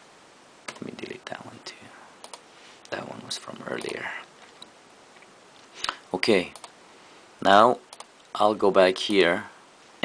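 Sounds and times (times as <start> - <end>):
computer mouse clicks: 2.2 - 2.4, 3.8 - 4.7, 6.5 - 6.8, 7.9 - 8.3.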